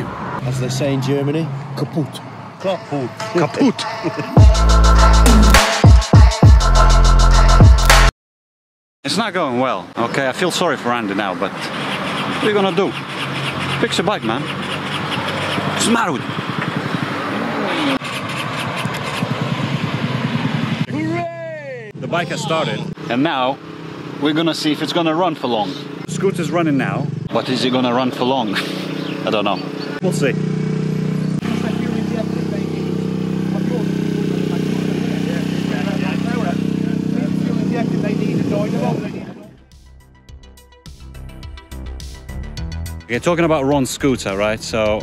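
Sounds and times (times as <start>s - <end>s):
voices talking: 0.4s - 4.5s, 9.1s - 18.0s, 20.8s - 39.6s
motor scooter engine running: 14.2s - 22.9s, 29.2s - 39.0s.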